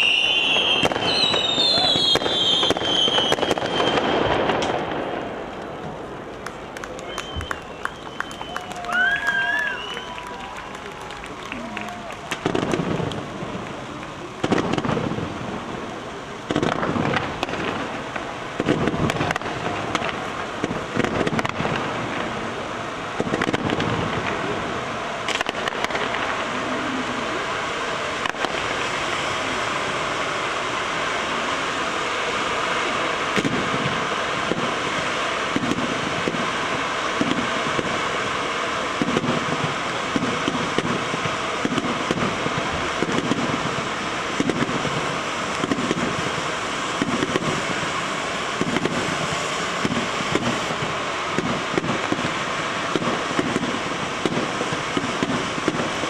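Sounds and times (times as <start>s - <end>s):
firework shells bursting: 0.0s - 22.6s, 32.5s - 56.0s
hissing crackling firework fountain: 0.0s - 56.0s.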